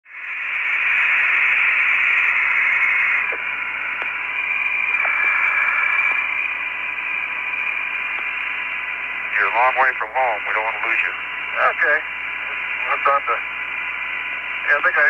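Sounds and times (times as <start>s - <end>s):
radio static hiss: 0.1s - 15.0s.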